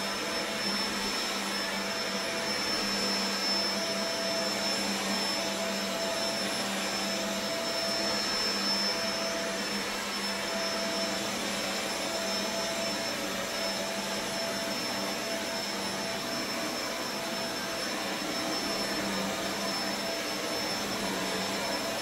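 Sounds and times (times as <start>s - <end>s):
vacuum cleaner on carpet: 0.0s - 22.0s.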